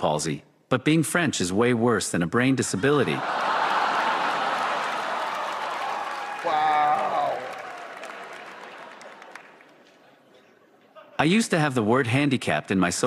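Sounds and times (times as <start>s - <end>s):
audience laughing and applauding: 2.8s - 11.3s.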